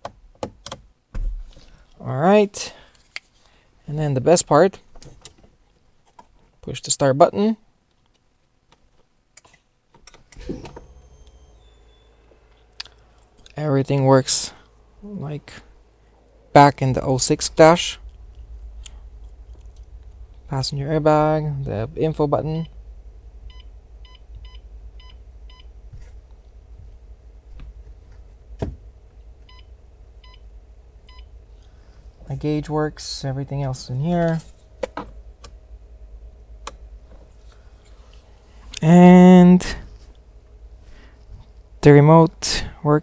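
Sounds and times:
low steady hum: 0:00.2 - 0:43.0
car engine starting and idling: 0:09.4 - 0:43.0.

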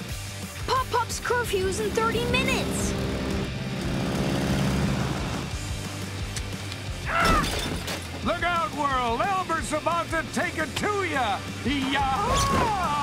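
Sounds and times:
cartoon background music: 0:00.0 - 0:03.5, 0:06.8 - 0:13.0.

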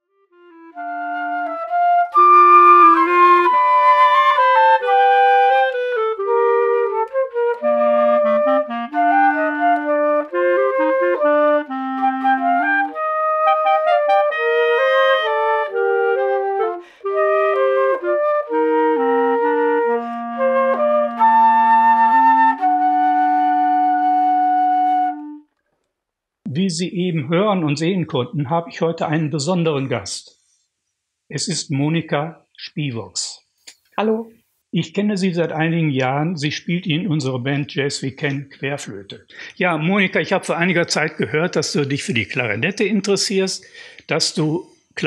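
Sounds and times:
flute and clarinet duet: 0:00.4 - 0:25.5.

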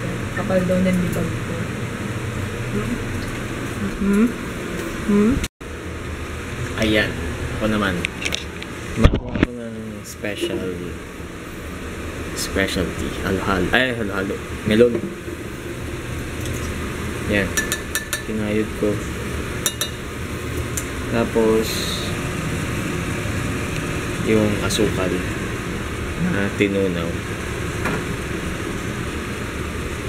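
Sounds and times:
low hum: 0:00.0 - 0:17.8.

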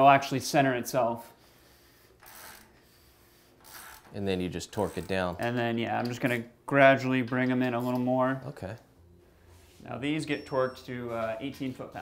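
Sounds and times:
ratchet wrench clicking: 0:02.2 - 0:02.7, 0:03.6 - 0:04.1.

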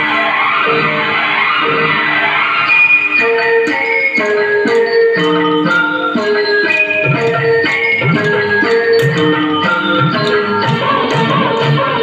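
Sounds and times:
keyboard melody: 0:00.0 - 0:12.0.

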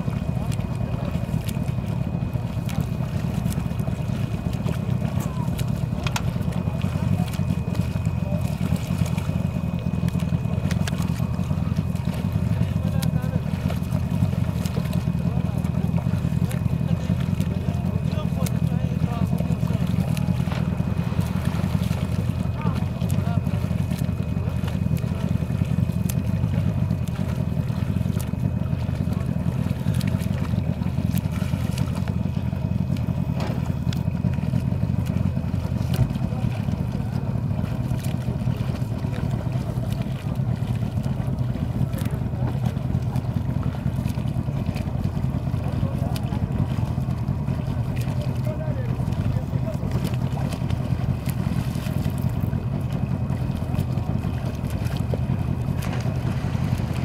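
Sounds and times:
boat motor running: 0:00.0 - 0:57.0.

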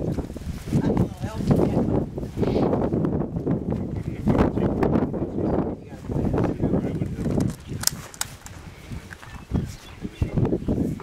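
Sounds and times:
wind rumble on microphone: 0:00.0 - 0:11.0
sharp clicks: 0:07.3 - 0:08.6.

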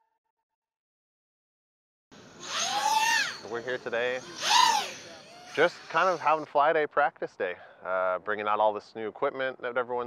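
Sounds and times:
quadcopter motors whining: 0:02.2 - 0:06.5.

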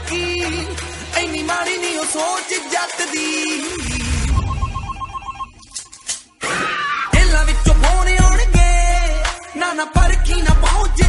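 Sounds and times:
short pitched tone: 0:03.9 - 0:06.0
telephone ringing: 0:03.9 - 0:06.1.

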